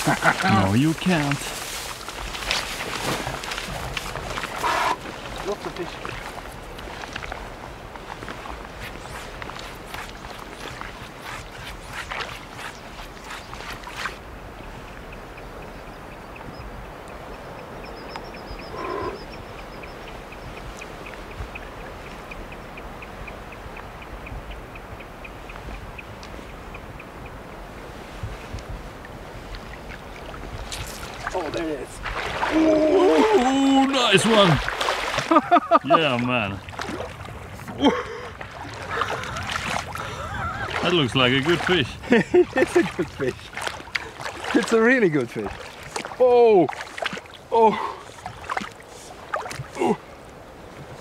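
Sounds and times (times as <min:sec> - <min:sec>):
boots splashing through water: 0:00.0 - 0:14.4, 0:29.6 - 0:51.0
person exclaiming loudly: 0:32.5 - 0:34.0.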